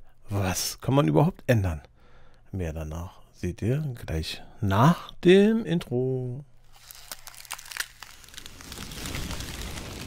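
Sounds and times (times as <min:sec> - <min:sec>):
crackling clicks: 0:06.7 - 0:10.0.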